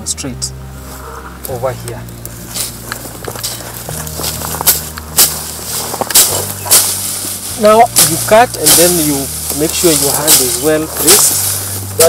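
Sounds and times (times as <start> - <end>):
leaves rustling: 0.6 - 12.0
machete chopping stems: 3.4 - 12.0.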